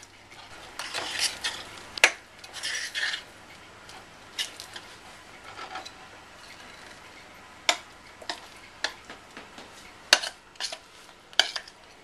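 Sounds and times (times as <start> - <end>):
mixture scraped from bowl: 0.4 - 1.7, 2.4 - 3.3.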